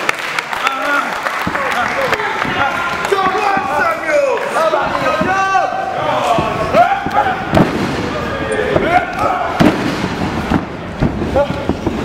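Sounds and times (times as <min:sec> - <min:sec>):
shouts and yells: 0:02.0 - 0:07.6.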